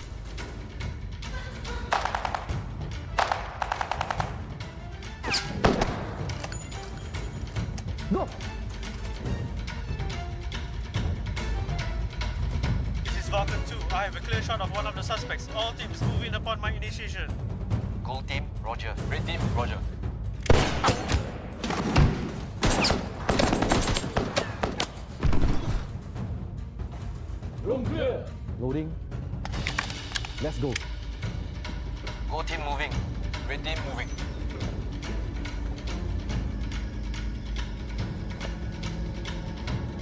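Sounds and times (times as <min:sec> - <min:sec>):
tense action film score: 0:00.0 - 0:40.0
automatic gunfire: 0:01.9 - 0:02.6, 0:03.2 - 0:04.4
rapid gunshots: 0:01.9 - 0:04.6, 0:20.5 - 0:25.9.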